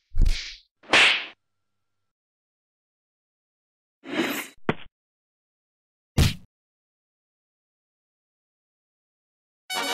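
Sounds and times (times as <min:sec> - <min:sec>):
cartoon punch thump with swish: 0:06.2 - 0:06.5.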